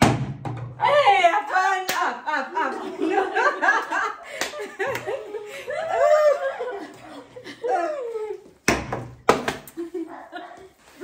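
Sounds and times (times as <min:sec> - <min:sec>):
people laughing: 0:02.2 - 0:08.6, 0:09.7 - 0:10.8.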